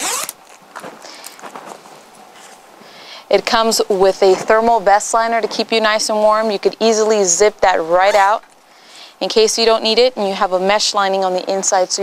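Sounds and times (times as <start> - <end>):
zipper pulled open: 0.0 - 0.6
jacket rustling: 0.0 - 2.8.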